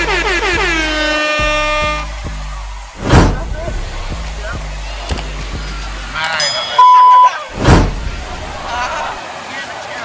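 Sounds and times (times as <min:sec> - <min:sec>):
air horn blasts: 0:00.0 - 0:02.1
background music with steady beat: 0:00.0 - 0:10.0.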